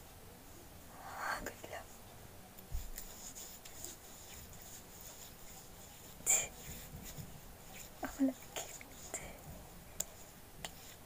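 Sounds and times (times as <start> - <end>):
woman whispering: 1.0 - 1.9, 6.3 - 6.6, 8.0 - 9.5
hands tapping and rustling: 2.6 - 11.0.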